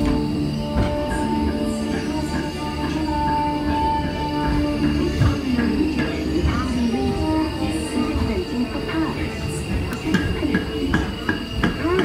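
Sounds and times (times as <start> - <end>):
crickets chirping: 0.0 - 12.0
steady background bed: 0.0 - 12.0.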